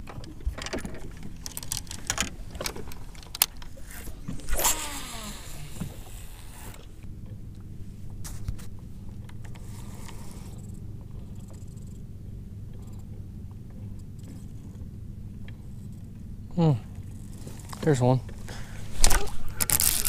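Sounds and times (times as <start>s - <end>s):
steady low hum: 0.0s - 20.0s
reel spool spinning line hiss: 4.4s - 6.9s.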